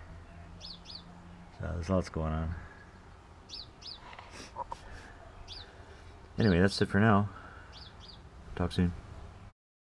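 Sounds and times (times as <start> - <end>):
faint outdoor background noise: 0.0 - 9.6
small bird chirping: 0.2 - 1.6, 2.7 - 6.8, 7.6 - 8.3.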